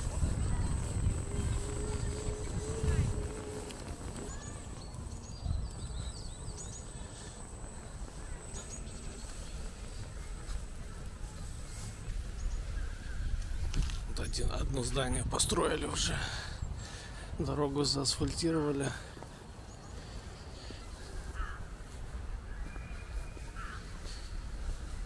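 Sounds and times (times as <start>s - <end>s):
outdoor street background: 0.0s - 25.0s
wind buffeting microphone: 0.0s - 25.0s.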